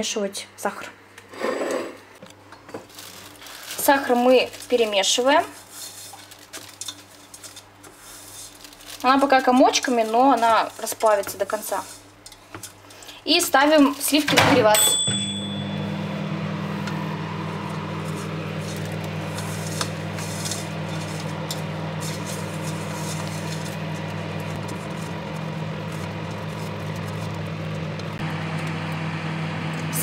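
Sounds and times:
microwave humming: 8.5s - 30.0s
microwave beep: 14.4s - 17.6s
spatula scraping steel saucepan: 18.1s - 23.8s.

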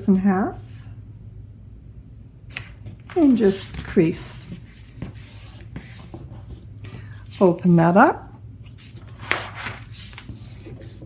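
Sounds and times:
paper being folded: 8.7s - 11.0s.

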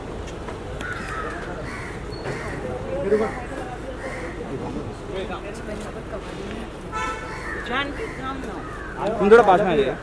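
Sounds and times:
crow cawing: 0.8s - 4.5s, 7.0s - 10.0s.

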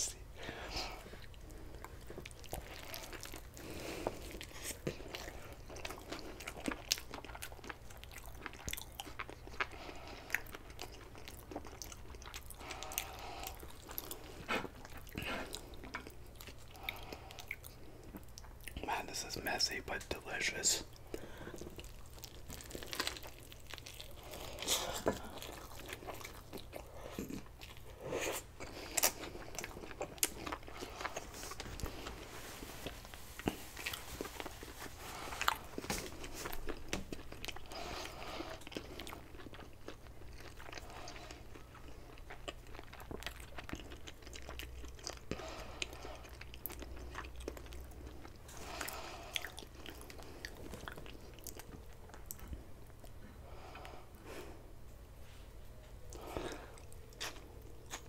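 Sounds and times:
biting and chewing food: 0.4s - 18.8s, 20.9s - 54.4s.

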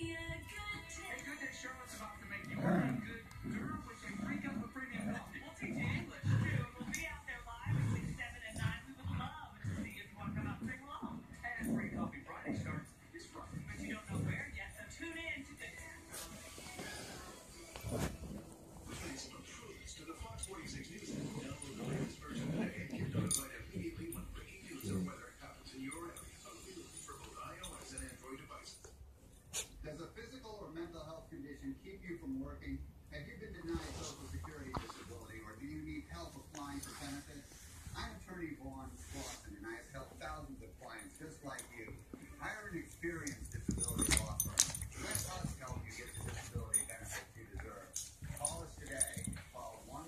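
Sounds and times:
television talk: 0.0s - 50.0s.

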